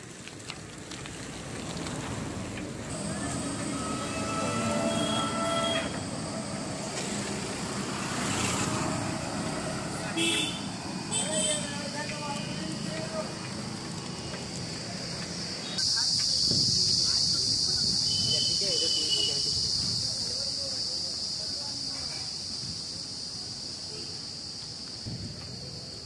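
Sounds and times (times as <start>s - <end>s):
road traffic: 0.0s - 26.0s
vehicle horn: 3.6s - 6.2s, 10.1s - 11.8s.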